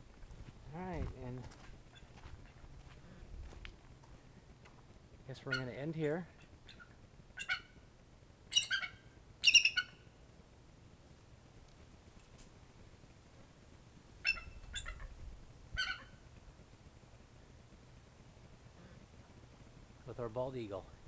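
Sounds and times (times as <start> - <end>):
eagle chirping: 5.4 - 7.8, 8.5 - 10.1, 14.2 - 15.2, 15.8 - 16.2.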